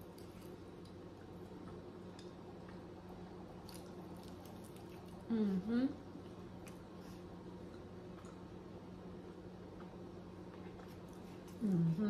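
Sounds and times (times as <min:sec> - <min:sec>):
person chewing food: 0:00.0 - 0:05.3, 0:06.2 - 0:08.6, 0:09.2 - 0:11.8
steady low hum: 0:00.0 - 0:12.0.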